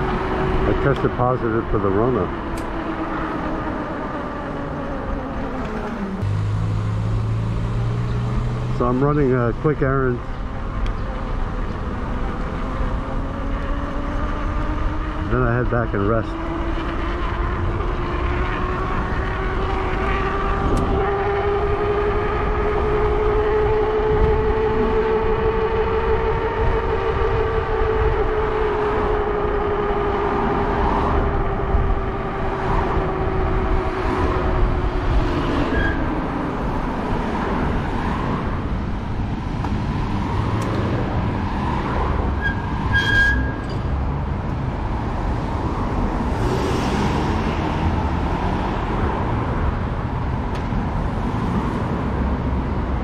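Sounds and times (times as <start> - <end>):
motorbike drive whine: 0.0 - 53.0
wind and road noise: 0.0 - 53.0
wind buffeting microphone: 16.5 - 42.9.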